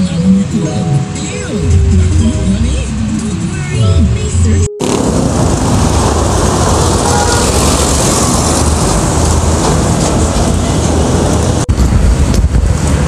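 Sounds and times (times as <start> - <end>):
busy city street traffic: 0.0 - 13.0.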